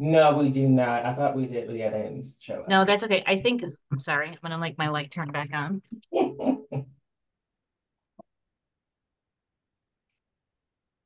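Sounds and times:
person's muffled vocal sounds: 5.9s - 6.9s.

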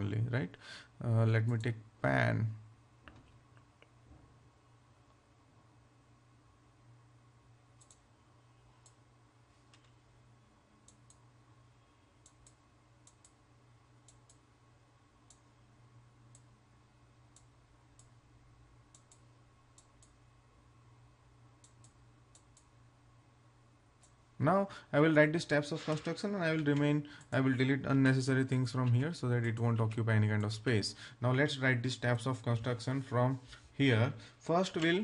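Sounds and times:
low steady hum: 0.0s - 35.0s
faint computer mouse clicks: 7.8s - 8.0s.

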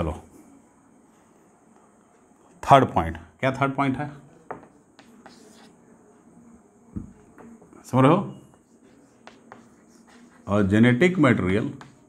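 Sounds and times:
chalk scratching on chalkboard: 4.6s - 5.8s, 8.4s - 12.0s
person speaking: 7.0s - 12.0s.

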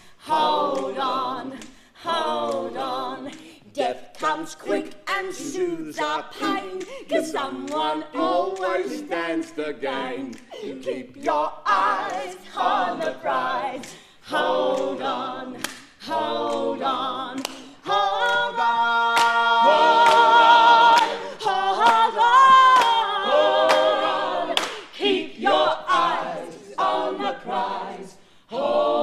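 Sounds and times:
voices singing in harmony: 0.0s - 29.0s.

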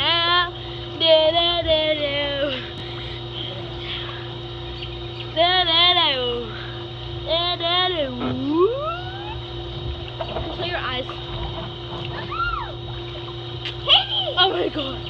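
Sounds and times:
girl singing wordless notes: 0.0s - 2.7s, 5.4s - 6.5s, 7.2s - 8.2s
steady low hum: 0.0s - 15.0s.

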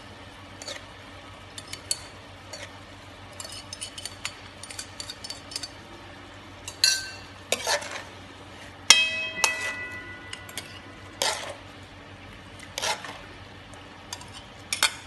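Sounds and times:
spatula scraping a pan: 0.6s - 0.9s, 1.6s - 5.6s, 7.5s - 11.6s, 12.6s - 13.3s, 14.1s - 15.0s
spatula clinking on a plate: 6.7s - 8.0s, 8.9s - 11.6s.

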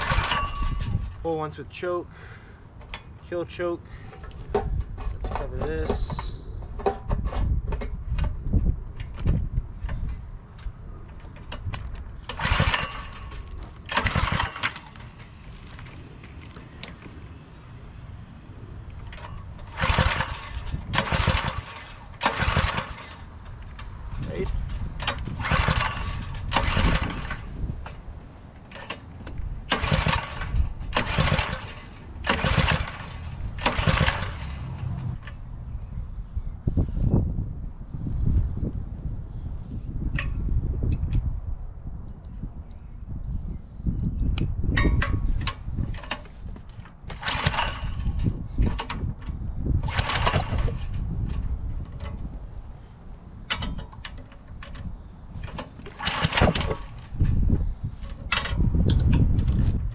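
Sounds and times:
small engine turning over: 0.0s - 1.2s, 12.2s - 17.4s, 18.9s - 23.9s, 24.6s - 27.6s, 29.7s - 35.4s, 45.9s - 49.0s, 49.8s - 52.1s, 53.5s - 59.8s
recoil cord yanks: 44.4s - 52.3s, 53.4s - 59.9s.

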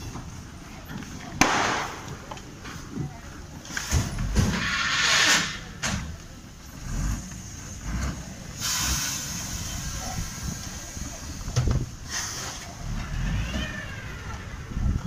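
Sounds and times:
fire engine rumbling: 0.0s - 15.0s
short air hisses: 4.5s - 5.6s, 8.6s - 10.8s, 12.0s - 12.7s.

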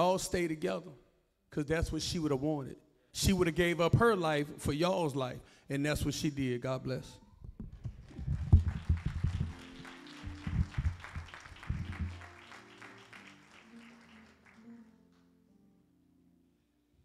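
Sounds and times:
congregation applauding: 7.8s - 14.9s.

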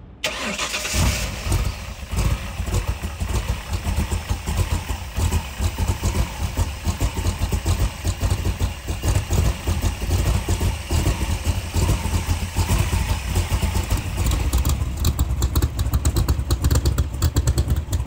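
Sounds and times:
engine idling low rumble: 0.0s - 18.0s.

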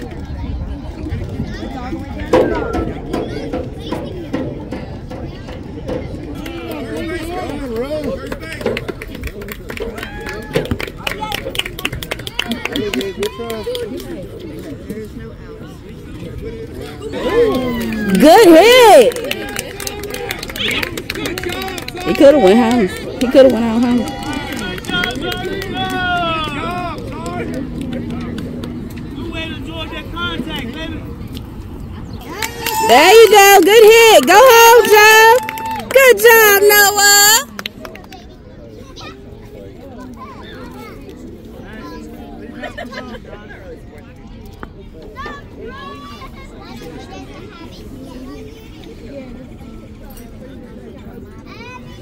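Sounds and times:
low outdoor rumble: 21.7s - 36.5s.

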